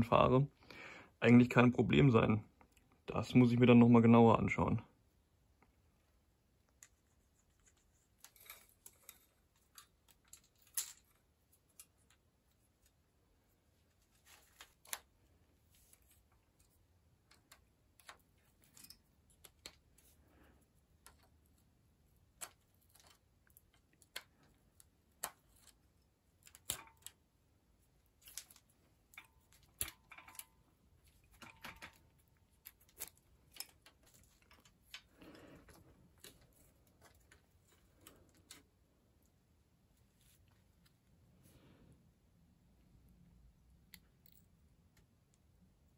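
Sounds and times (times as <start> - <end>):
tools clicking on bicycle parts: 26.4 - 27.2, 28.2 - 30.6.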